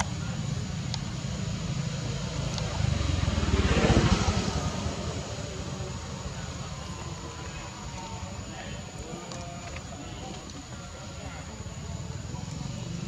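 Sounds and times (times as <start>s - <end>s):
low engine rumble passing: 0.0s - 13.0s.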